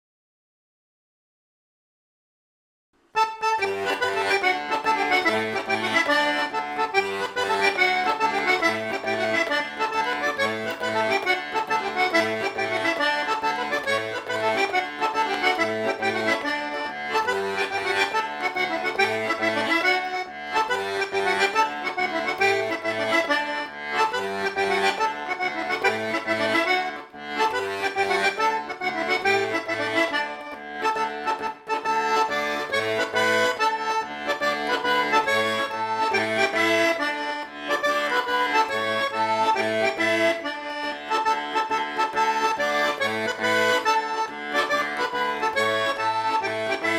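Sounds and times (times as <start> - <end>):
button accordion playing tarantella: 3.2 - 46.9.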